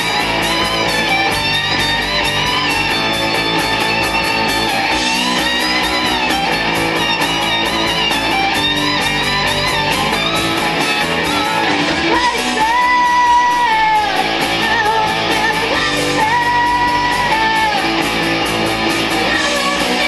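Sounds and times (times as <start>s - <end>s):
electric guitar: 0.0s - 20.0s
rock band playing: 0.0s - 20.0s.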